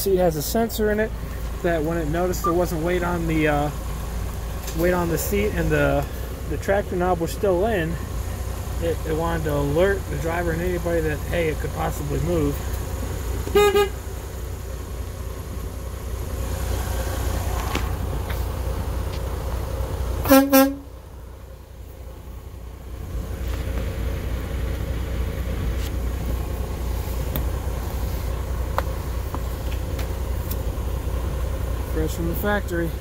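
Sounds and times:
diesel engine idling hum: 0:00.0 - 0:33.0
truck horn toots: 0:13.4 - 0:14.1, 0:20.2 - 0:21.0.

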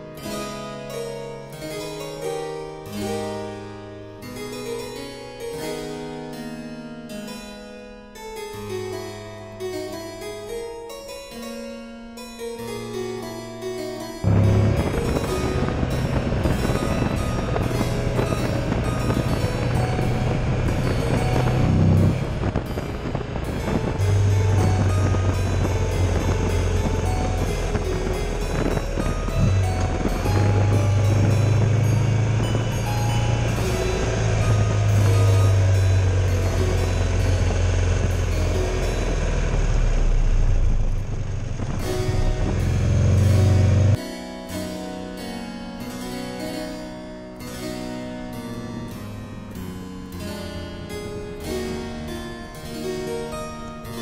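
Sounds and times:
harpsichord music: 0:00.0 - 0:54.0
motorcycle engine running: 0:14.2 - 0:44.0
wind rush: 0:14.3 - 0:44.0.

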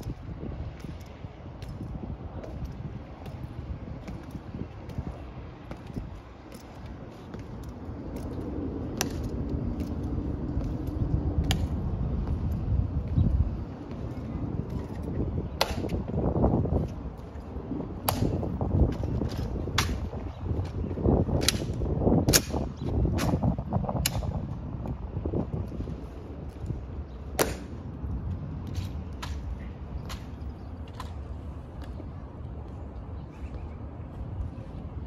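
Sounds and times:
metal-tapped shoes clicking on stone: 0:00.0 - 0:12.6
low rumble: 0:01.6 - 0:27.0.

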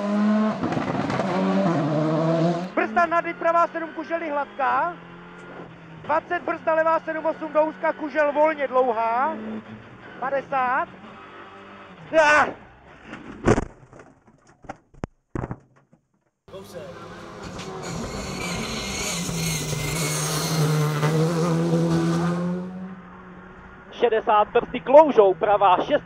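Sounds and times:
rally car engine approaching: 0:00.0 - 0:13.1, 0:16.5 - 0:26.0.

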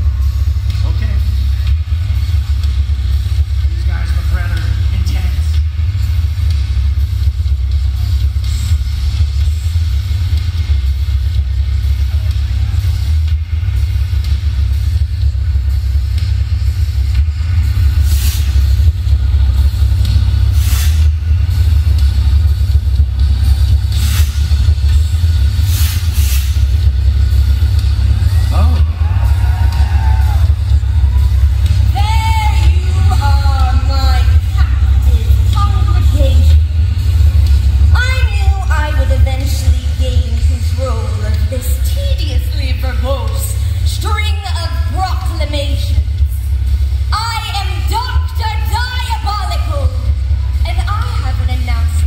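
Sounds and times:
deep rumble from sound system: 0:00.0 - 0:52.0.

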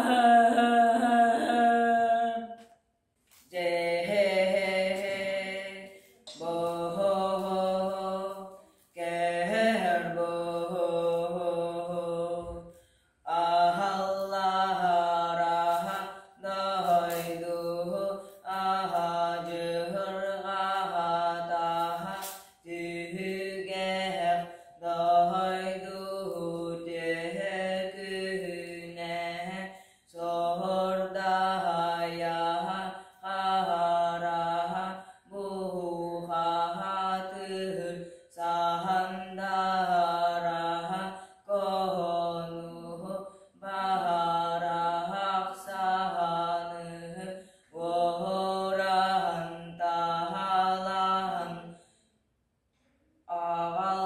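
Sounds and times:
boy singing unaccompanied: 0:03.4 - 0:12.7, 0:13.3 - 0:51.7, 0:53.3 - 0:54.0
short breaths: 0:12.7 - 0:13.2, 0:29.7 - 0:30.1, 0:38.0 - 0:38.3, 0:47.4 - 0:47.7, 0:51.7 - 0:52.2.

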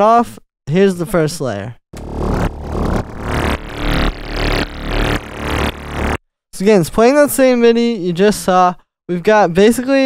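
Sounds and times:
pulsing synth bass note: 0:02.0 - 0:06.2.

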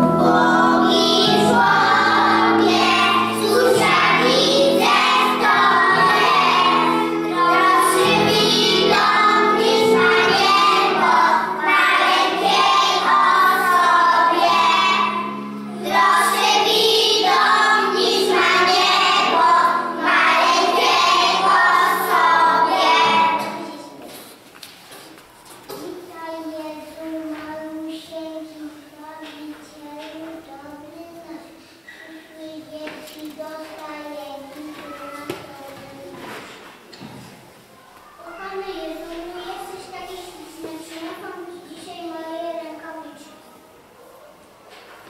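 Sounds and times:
instrumental accompaniment: 0:00.0 - 0:23.8
children singing: 0:00.0 - 0:24.0.

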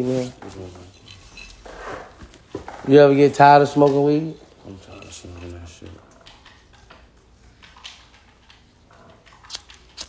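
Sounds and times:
man speaking: 0:02.9 - 0:06.1.

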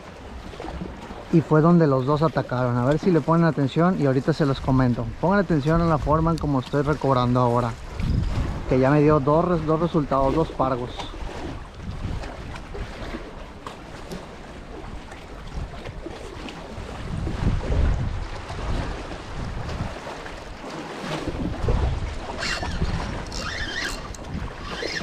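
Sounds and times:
sea water washing against rocks: 0:00.0 - 0:25.0
wind buffeting microphone: 0:04.4 - 0:25.0.

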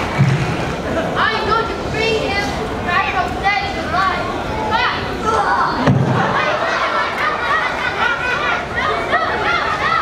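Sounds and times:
children chattering: 0:00.7 - 0:10.0
thump: 0:05.8 - 0:06.2.

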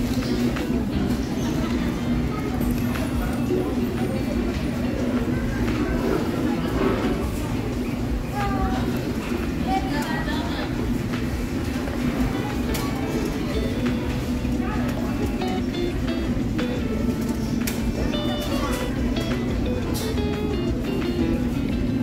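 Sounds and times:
hubbub of chatter: 0:00.0 - 0:22.0
background music: 0:10.8 - 0:22.0.

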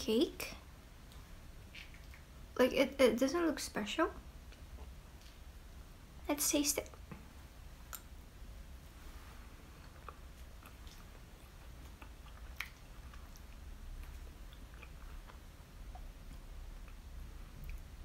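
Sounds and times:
chewing soft cake: 0:01.0 - 0:02.6, 0:07.0 - 0:08.3, 0:09.0 - 0:18.0
wet mouth clicks: 0:07.9 - 0:08.1.

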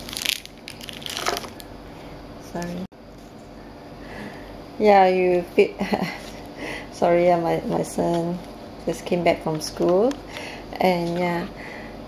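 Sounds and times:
plastic bag crinkling: 0:00.0 - 0:01.7.

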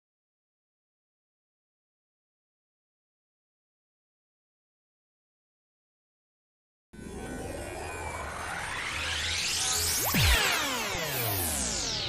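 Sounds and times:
synthesized whooshing riser: 0:07.0 - 0:12.0.

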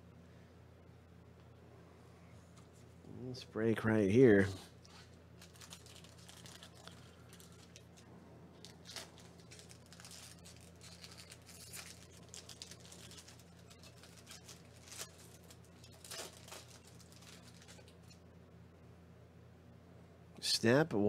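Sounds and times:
low electrical hum: 0:00.0 - 0:21.0
foil wrapper crinkling and tearing: 0:04.8 - 0:18.2.

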